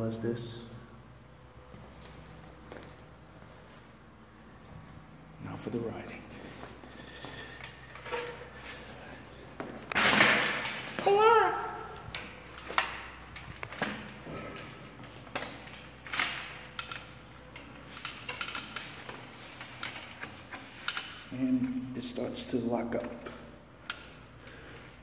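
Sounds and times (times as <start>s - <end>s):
bicycle chain and crank clicking: 13.7s - 21.2s.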